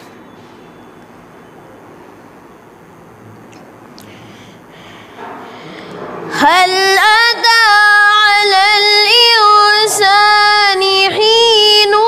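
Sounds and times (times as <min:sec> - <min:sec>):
boy chanting recitation: 0:05.6 - 0:12.0.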